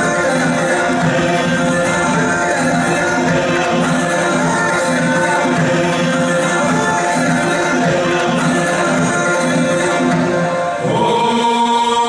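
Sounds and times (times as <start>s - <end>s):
choir singing: 0.0s - 12.0s
dance music: 0.0s - 12.0s.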